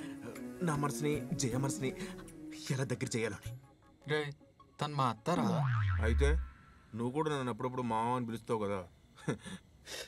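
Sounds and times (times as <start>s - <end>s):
comic falling tone: 5.4s - 6.7s.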